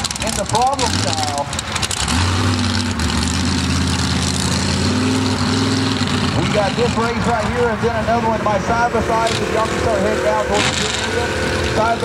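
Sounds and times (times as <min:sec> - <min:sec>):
truck engines running loud: 0:00.0 - 0:12.0.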